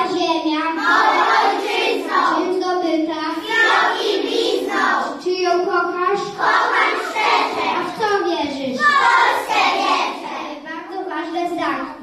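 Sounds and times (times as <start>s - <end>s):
children singing in chorus: 0.8s - 2.4s, 3.4s - 5.2s, 6.2s - 8.0s, 8.8s - 10.5s.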